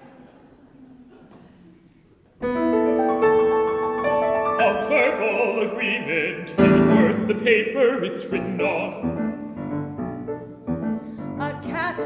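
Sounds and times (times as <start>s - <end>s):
piano chords: 2.4s - 12.0s.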